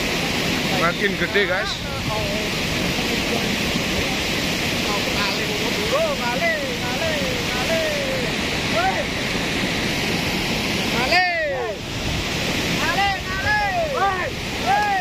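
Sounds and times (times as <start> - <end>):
muddy water rushing: 0.0 - 15.0
people's voices: 0.6 - 9.2.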